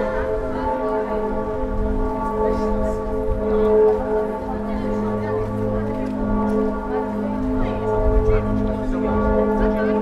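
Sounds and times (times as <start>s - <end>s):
church bells ringing: 0.0s - 10.0s.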